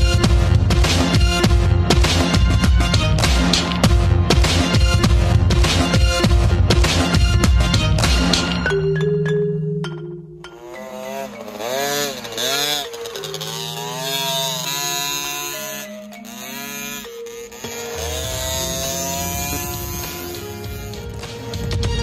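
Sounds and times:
background music: 0.0s - 22.0s
two-stroke engine revving: 10.5s - 22.0s
low rumble: 18.0s - 22.0s.

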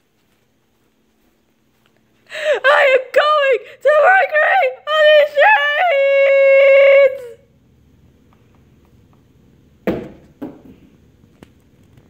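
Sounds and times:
person screaming high-pitched: 2.4s - 7.4s.

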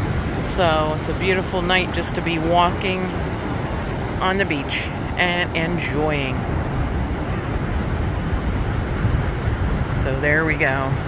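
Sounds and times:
ocean surf breaking: 0.0s - 11.0s.

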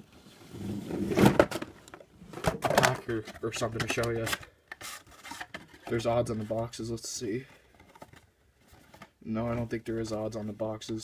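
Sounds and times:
rustling and scraping objects: 0.0s - 11.0s.

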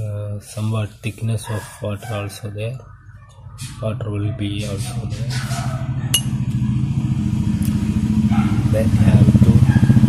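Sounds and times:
vehicle engine running: 4.5s - 10.0s.

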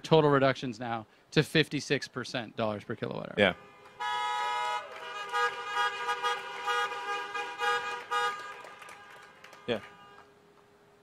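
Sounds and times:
car horns honking: 3.4s - 10.5s.

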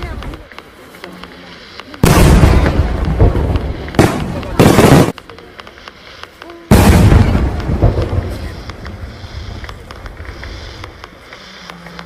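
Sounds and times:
fireworks bangs: 0.0s - 12.0s
rumbling crackling firework: 0.0s - 12.0s.

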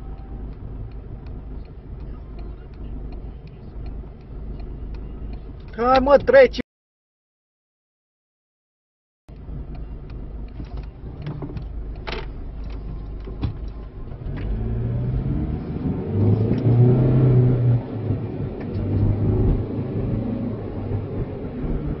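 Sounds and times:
car engine and road noise: 0.0s - 6.6s, 9.3s - 22.0s.

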